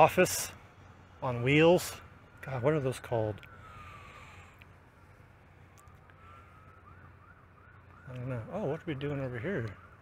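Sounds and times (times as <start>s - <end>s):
emergency vehicle siren wailing: 0.0s - 10.0s.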